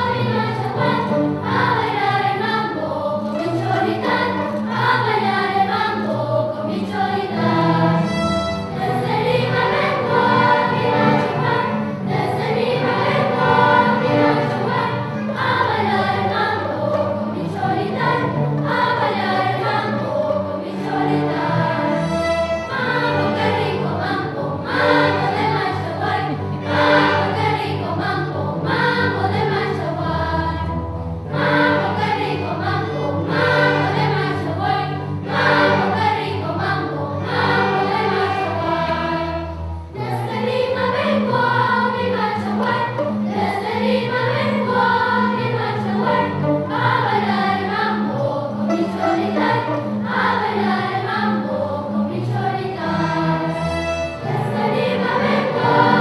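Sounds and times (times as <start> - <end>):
children's choir singing: 0.0 - 56.0
string orchestra: 0.0 - 56.0.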